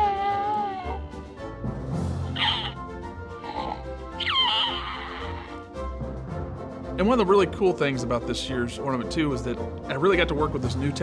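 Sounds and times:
recorded baby coos and babbles: 0.0s - 1.0s
soft background music: 0.0s - 11.0s.

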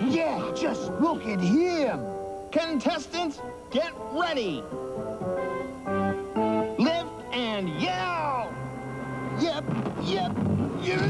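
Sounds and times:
held music notes: 0.0s - 11.0s
light background music: 0.0s - 11.0s.

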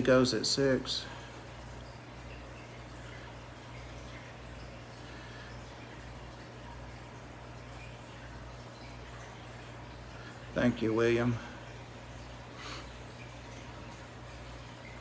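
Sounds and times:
aquarium filter humming: 0.0s - 15.0s
trickling dripping water: 0.0s - 15.0s.

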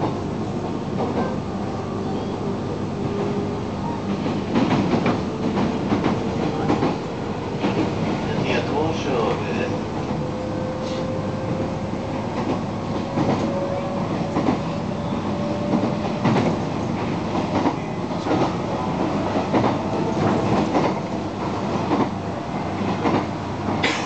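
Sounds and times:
train rumble: 0.0s - 24.0s.

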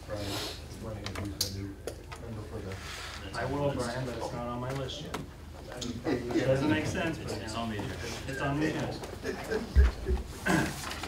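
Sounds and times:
low voices talking: 0.0s - 11.0s.

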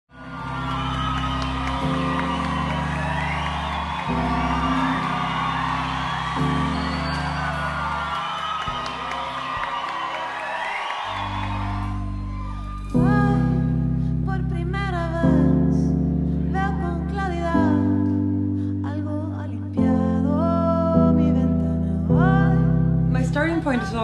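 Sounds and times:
synthesizer chords: 0.1s - 10.5s, 11.1s - 24.0s.

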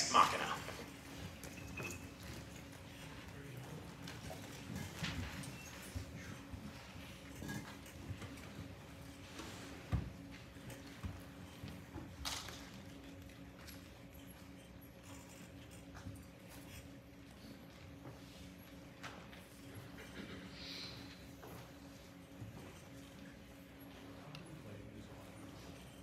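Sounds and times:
faint steady hum: 0.0s - 26.0s
small knocks and rustles: 1.1s - 19.8s.

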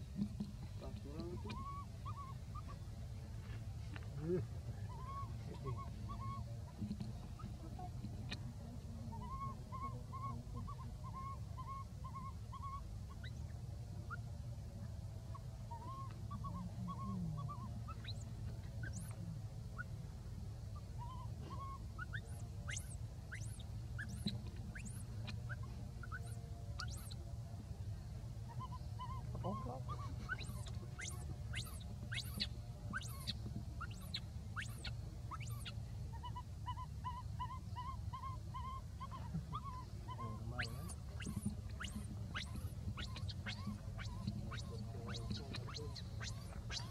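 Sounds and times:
hoot-like animal calls: 0.0s - 2.9s, 4.2s - 14.3s, 15.2s - 27.2s, 28.4s - 46.9s.

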